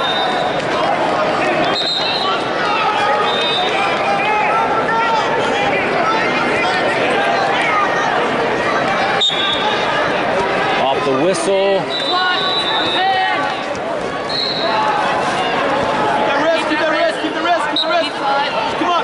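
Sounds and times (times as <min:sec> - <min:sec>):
crowd yelling and cheering: 0:00.0 - 0:19.0.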